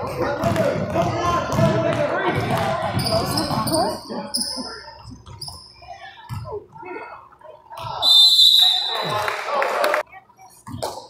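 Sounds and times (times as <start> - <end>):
indistinct voices in a gym: 0.0 - 11.0.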